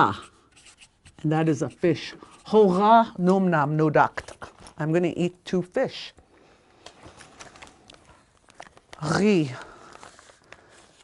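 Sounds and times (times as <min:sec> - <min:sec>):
paper rustling: 0:06.9 - 0:11.0.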